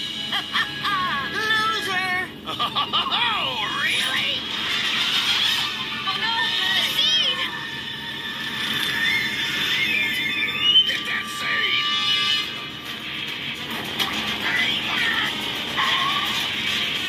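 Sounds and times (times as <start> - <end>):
film soundtrack music: 0.0 - 17.0
shrill gliding squeals: 7.5 - 12.7.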